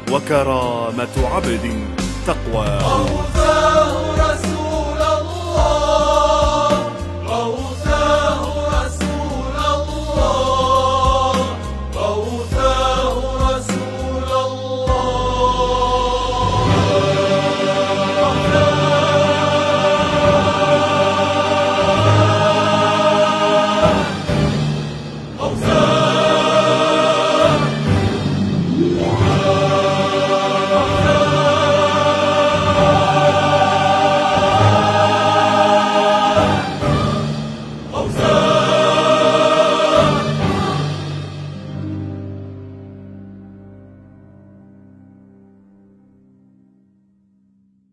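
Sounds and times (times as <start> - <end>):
choir-like voices holding chords: 0.0 - 44.0.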